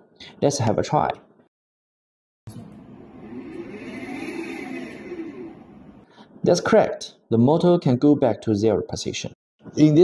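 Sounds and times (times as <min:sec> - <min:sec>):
servo motor whining: 0:03.2 - 0:05.8.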